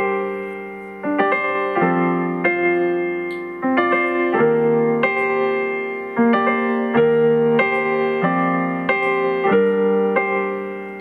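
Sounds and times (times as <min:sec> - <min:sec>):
electronic keyboard piano chords: 0:00.0 - 0:11.0.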